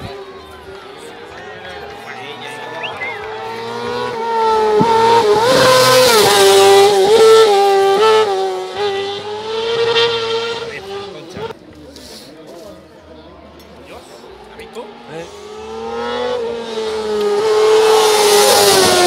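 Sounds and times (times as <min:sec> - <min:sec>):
race car engine revving: 0:00.0 - 0:11.6, 0:14.0 - 0:19.0.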